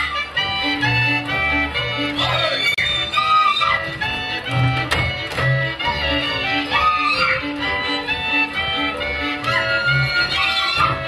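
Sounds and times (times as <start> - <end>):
fiddles and reed instruments: 0.0 - 11.0
repeated bass notes: 0.0 - 11.0.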